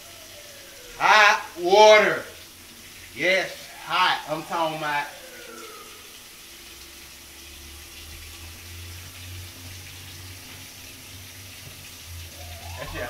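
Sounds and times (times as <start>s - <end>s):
tap water running: 0.0s - 13.0s.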